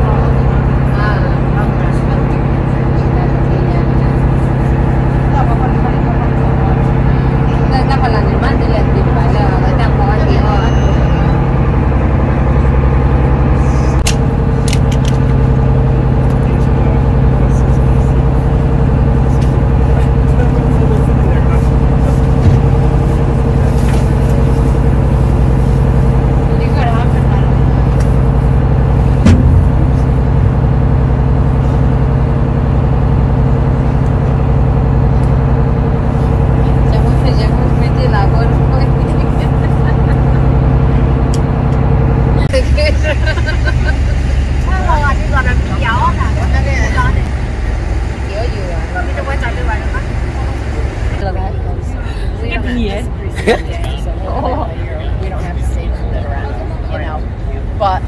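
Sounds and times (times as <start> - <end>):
people chattering: 0.0 - 12.8, 36.5 - 41.4, 42.4 - 47.3, 48.1 - 58.0
boat engine humming: 0.0 - 58.0.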